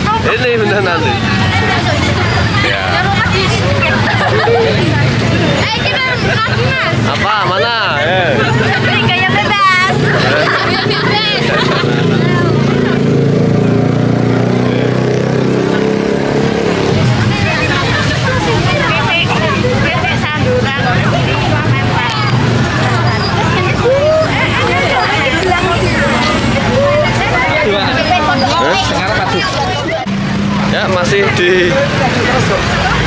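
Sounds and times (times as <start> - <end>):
crowd chattering and calling out: 0.0 - 33.0
vehicle engine running: 0.0 - 33.0.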